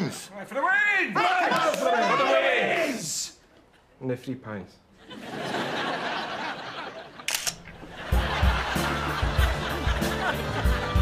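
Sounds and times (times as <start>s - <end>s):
camera shutter click: 7.2s - 7.8s.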